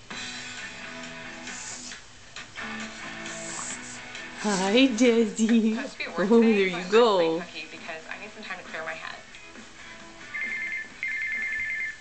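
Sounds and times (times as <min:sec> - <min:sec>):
telephone ringing: 0:10.3 - 0:12.0.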